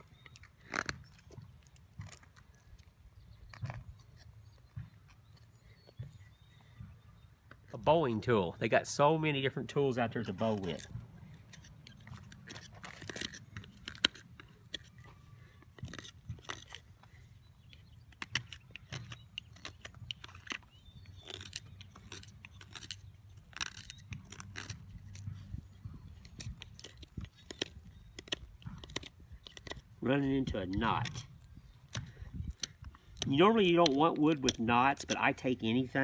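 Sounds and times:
knife scraping wood: 0:00.0 - 0:06.6, 0:09.6 - 0:36.0.

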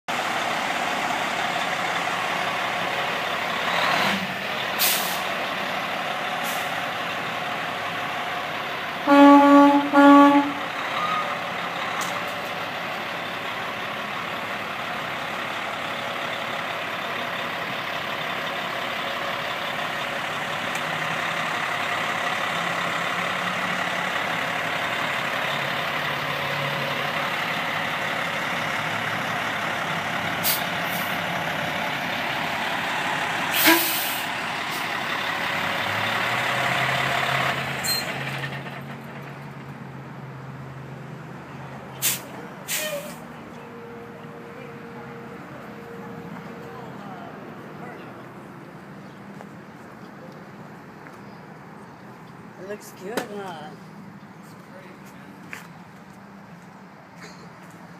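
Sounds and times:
diesel truck engine running: 0:00.1 - 0:57.9
truck horn blasts: 0:09.0 - 0:11.4, 0:33.6 - 0:34.2.

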